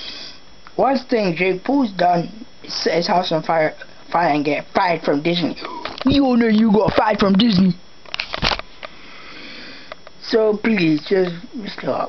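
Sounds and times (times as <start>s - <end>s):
person sniffing: 0.0s - 0.4s
faint drawn breath: 0.0s - 0.5s, 8.9s - 10.0s.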